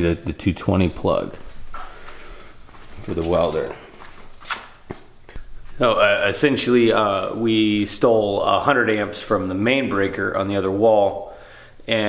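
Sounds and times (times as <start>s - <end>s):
man's voice: 5.8s - 12.0s.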